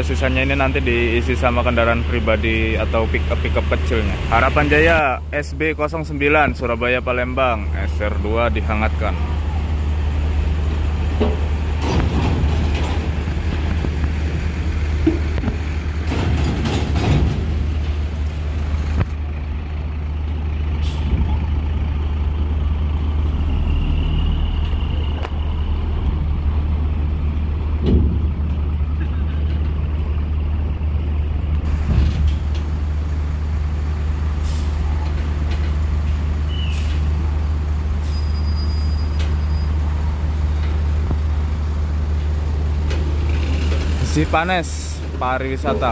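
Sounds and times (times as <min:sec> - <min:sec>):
bus engine rumble: 0:00.0 - 0:45.9
air brakes hissing: 0:34.4 - 0:35.0, 0:36.5 - 0:37.2, 0:37.9 - 0:39.8.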